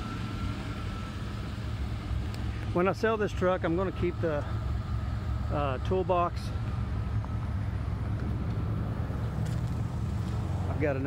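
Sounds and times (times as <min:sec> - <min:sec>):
pickup engine idling: 0:00.0 - 0:11.0.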